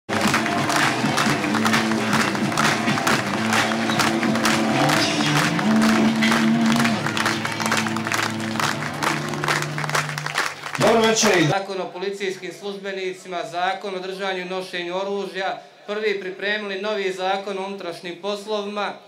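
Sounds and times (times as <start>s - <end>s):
crowd clapping along: 0.1s - 11.6s
loud music: 0.1s - 11.6s.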